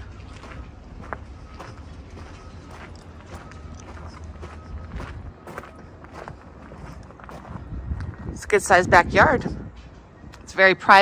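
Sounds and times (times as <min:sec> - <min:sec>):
footsteps crunching on gravel: 0:00.0 - 0:08.2.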